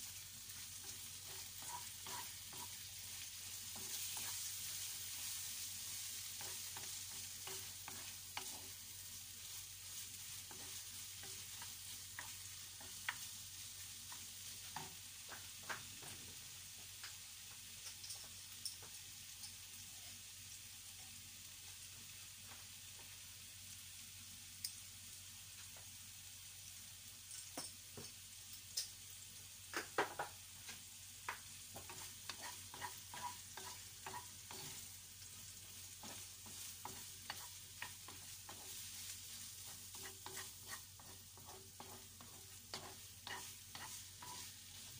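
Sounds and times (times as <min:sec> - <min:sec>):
meat sizzling in a pan: 0:00.0 - 0:44.9
wooden spatula scraping a pan: 0:00.4 - 0:16.2, 0:31.7 - 0:35.0, 0:35.6 - 0:44.9
spatula tapping a pan: 0:00.8 - 0:02.9, 0:06.2 - 0:08.8, 0:10.4 - 0:13.4, 0:14.1 - 0:16.2, 0:29.7 - 0:34.9, 0:35.7 - 0:38.8, 0:39.6 - 0:44.5.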